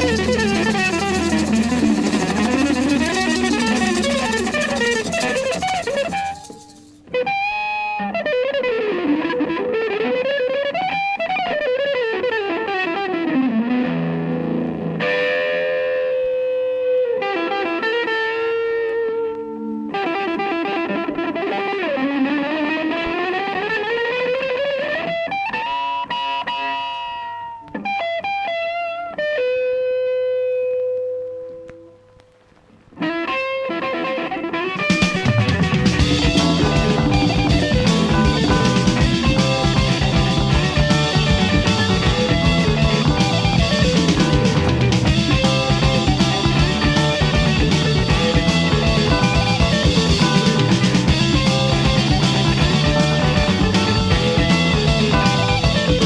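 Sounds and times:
band with drums: 0.0 - 7.0, 34.8 - 56.0
distorted electric guitar solo: 0.0 - 56.0.

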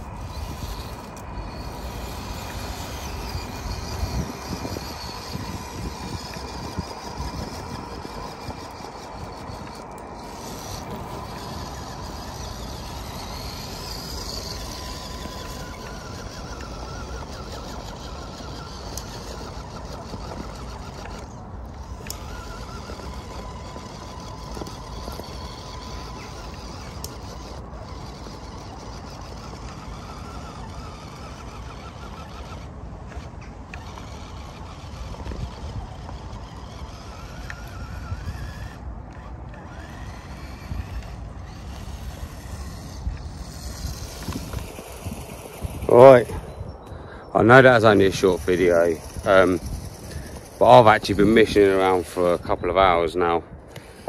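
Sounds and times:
electric motor whining: 0.0 - 54.0
faint high whine: 0.0 - 54.0.

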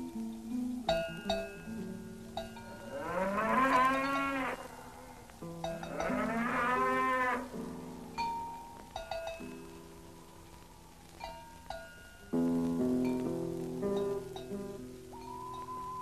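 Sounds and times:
cowbells clinking: 0.0 - 16.0
cow mooing: 2.9 - 5.2, 5.8 - 7.6.

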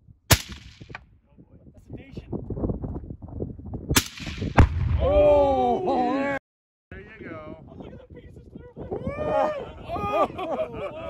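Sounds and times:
air rifle shots: 0.3 - 1.0, 4.0 - 5.0
exploding target boom: 4.0 - 5.4
person shouting: 5.0 - 6.4.

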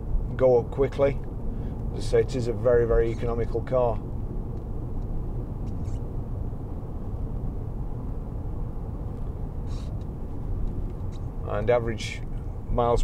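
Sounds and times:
car cabin road rumble: 0.0 - 13.0.

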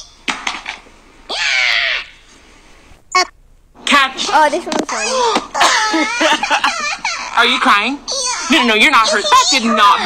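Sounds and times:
person screaming in rage: 1.3 - 2.2.

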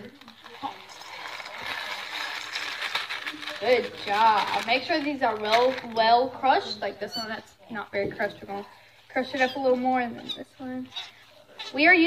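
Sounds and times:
crackers crunching in metal bowl: 0.0 - 7.4.

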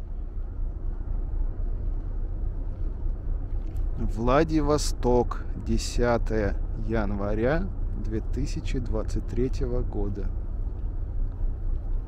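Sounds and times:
distant city traffic rumble: 0.0 - 12.0.

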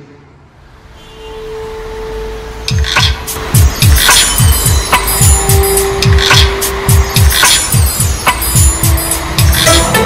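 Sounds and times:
sharp hits: 2.7 - 10.0
held synth note: 8.6 - 10.0.

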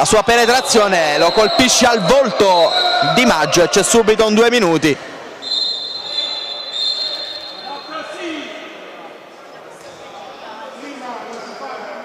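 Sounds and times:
referee's whistle blast: 1.1 - 3.6, 5.4 - 8.1.

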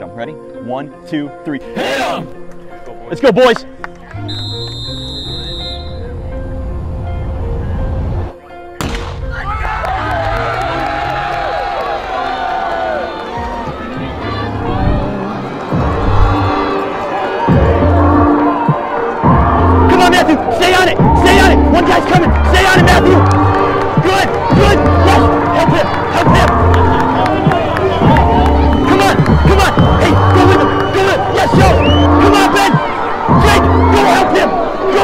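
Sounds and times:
high whistle tone: 4.2 - 6.2, 31.7 - 32.3
starter's pistol crack: 8.8 - 9.2
crowd cheering and shouting: 9.2 - 35.0
music with bass beat: 17.5 - 19.9, 21.0 - 34.0.

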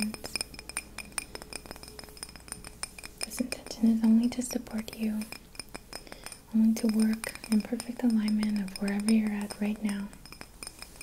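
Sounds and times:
fingernails tapping on glass jar: 0.0 - 11.0.

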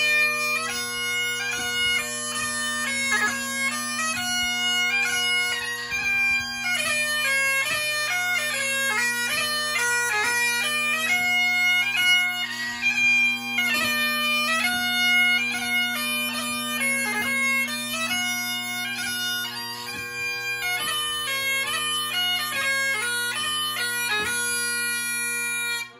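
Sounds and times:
bagpipe playing a march: 0.0 - 25.9.

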